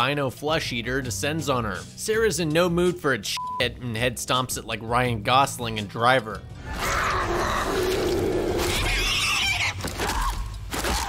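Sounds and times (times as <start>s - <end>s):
harsh animal-like shrieking cry: 6.6s - 10.4s.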